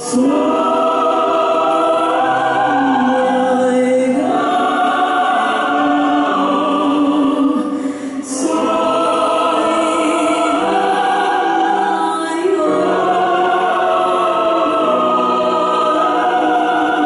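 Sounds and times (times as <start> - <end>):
choir singing sustained chords: 0.0 - 17.0.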